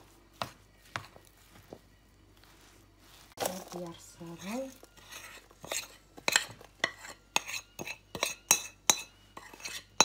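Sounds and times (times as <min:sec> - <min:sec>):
hands working biscuit crumbs: 0:00.0 - 0:10.0.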